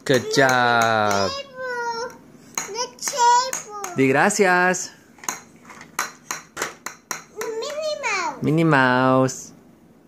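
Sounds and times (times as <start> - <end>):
knocks on plastic table: 5.2 - 7.8.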